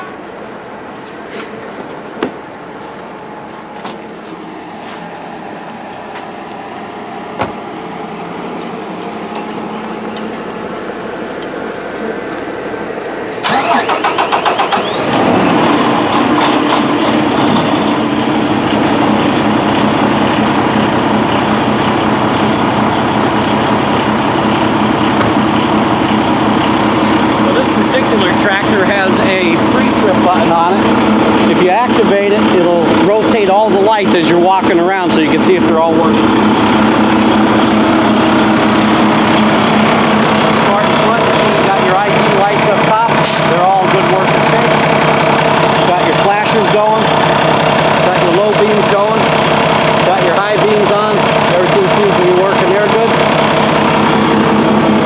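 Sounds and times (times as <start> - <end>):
diesel engine idling: 0.0 - 55.0
starter cranking diesel engine: 13.2 - 55.0.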